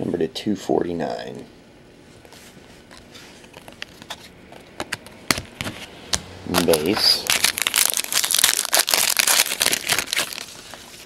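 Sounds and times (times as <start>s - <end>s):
foil wrapper crinkling: 6.5s - 11.0s.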